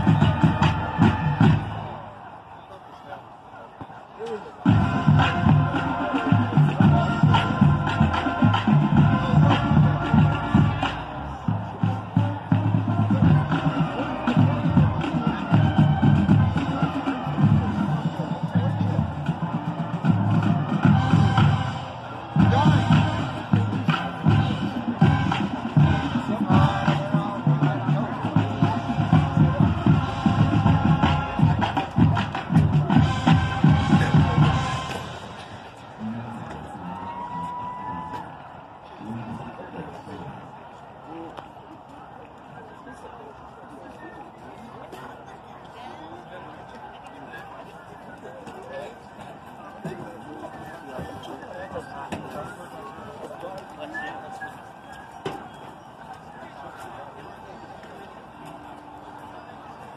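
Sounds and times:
marching drums: 0.0 - 2.0, 4.6 - 36.7.

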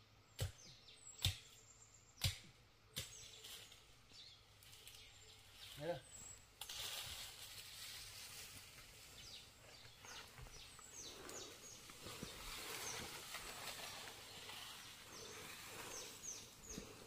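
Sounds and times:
rustling of brush and leaves: 3.0 - 17.0
soft hiss: 4.6 - 17.0
bird calling: 9.2 - 17.0.

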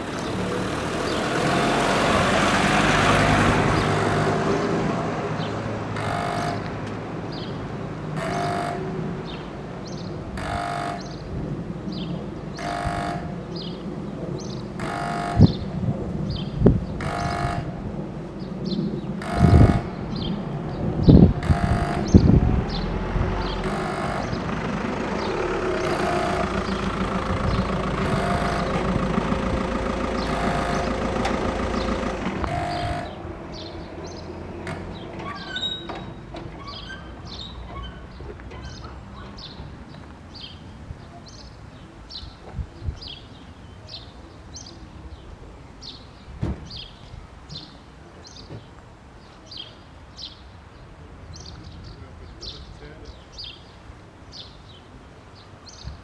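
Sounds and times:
level crossing warning horn: 1.4 - 5.2, 5.8 - 7.2, 8.2 - 9.5, 10.4 - 11.4, 12.6 - 13.6, 14.8 - 15.8, 17.0 - 17.9, 19.2 - 20.2, 21.2 - 33.8
sharp knocks: 19.2 - 20.0.

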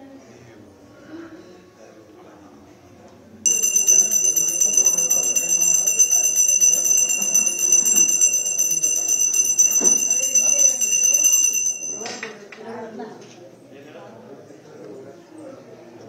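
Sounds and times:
murmur of voices: 0.0 - 16.0
hand bell ringing: 3.5 - 12.5.

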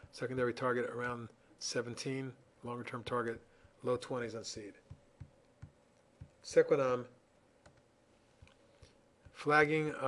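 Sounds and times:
computer mouse clicks: 7.6 - 9.4.

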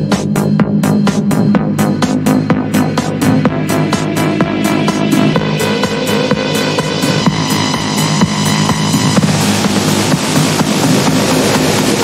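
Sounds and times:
kick drum beat: 0.0 - 12.0
minimal techno music: 0.0 - 12.0
hissing noise wash: 1.1 - 12.0.

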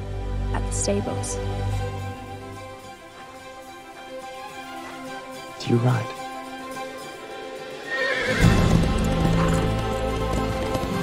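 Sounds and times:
film score music: 0.0 - 11.0
galloping hoofbeats: 7.7 - 11.0
horse neighing: 7.8 - 10.1.

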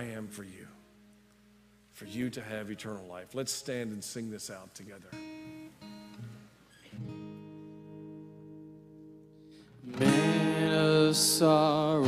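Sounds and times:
acoustic guitar soft chords: 0.0 - 12.0.

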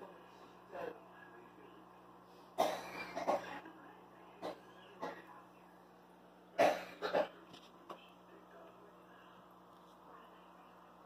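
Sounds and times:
steady low hum: 0.0 - 11.0
person coughing: 2.6 - 3.6, 6.6 - 7.4.

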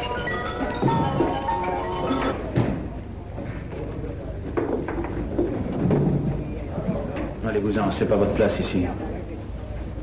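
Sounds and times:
film soundtrack hum and hiss: 0.0 - 10.0.

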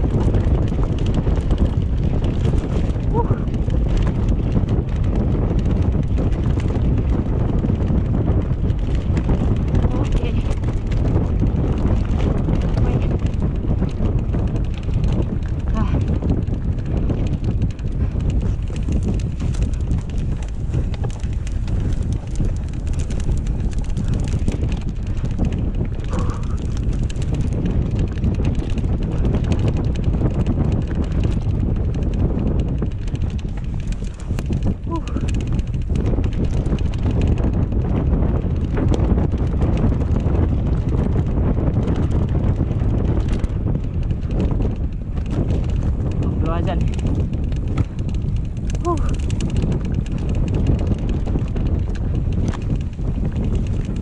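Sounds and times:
bike clattering over rough ground: 0.0 - 54.0
wind rumble on microphone: 0.0 - 54.0.

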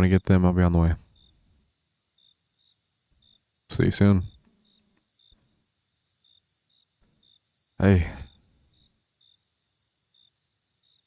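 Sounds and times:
cricket chirps: 0.0 - 11.0.

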